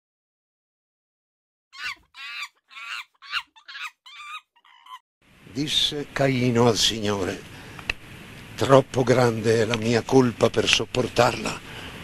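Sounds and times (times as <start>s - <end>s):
high-pitched animal calls: 1.8s - 5.0s.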